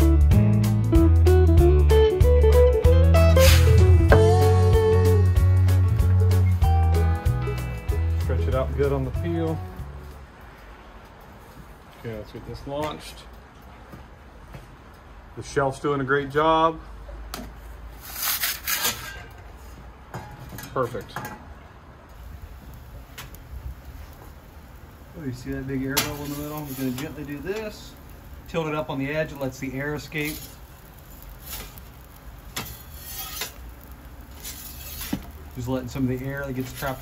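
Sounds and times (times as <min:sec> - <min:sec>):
metal pizza peel scraping on stone: 0:18.0 - 0:19.4, 0:26.0 - 0:27.2, 0:30.2 - 0:30.6, 0:31.4 - 0:31.8, 0:32.5 - 0:35.7, 0:36.6 - 0:37.0.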